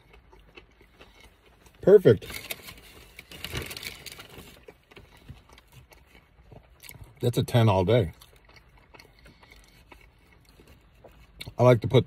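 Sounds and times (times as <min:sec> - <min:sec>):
faint chewing: 0:00.0 - 0:12.0.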